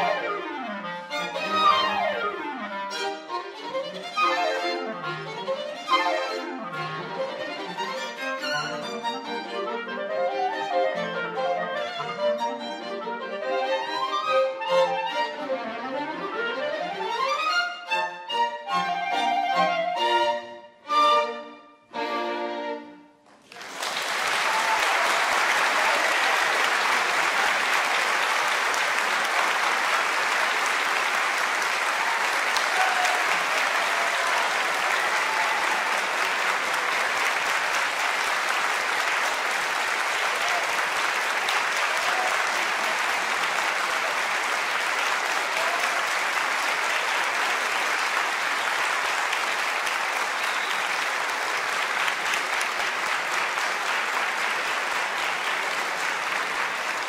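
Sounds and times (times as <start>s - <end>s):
audience applause: 0.0s - 0.3s, 23.3s - 57.0s.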